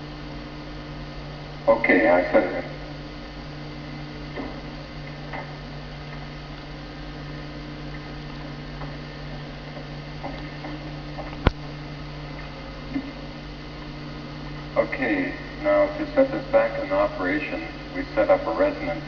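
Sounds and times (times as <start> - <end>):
electrical mains hum: 0.0 - 19.0.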